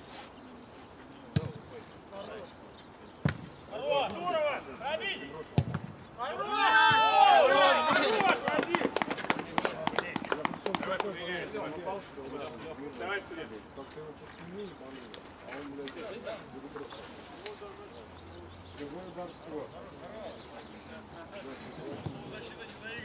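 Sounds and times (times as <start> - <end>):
football kicks: 1.4 - 1.6, 5.5 - 6.0
men shouting: 6.2 - 8.6.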